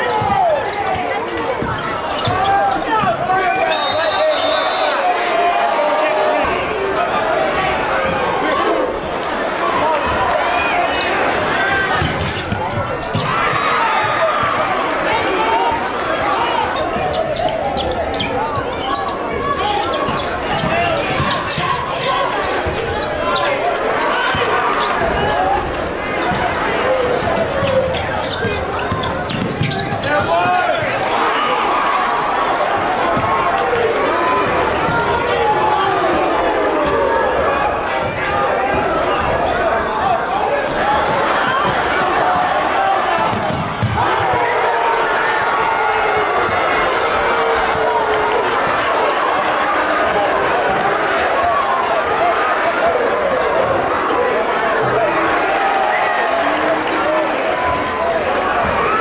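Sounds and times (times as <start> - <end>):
voices in a hall: 0.0 - 59.0.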